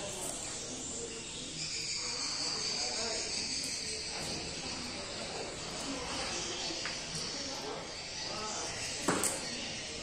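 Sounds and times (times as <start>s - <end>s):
faint background voices: 0.0s - 10.0s
high insect trill: 0.0s - 10.0s.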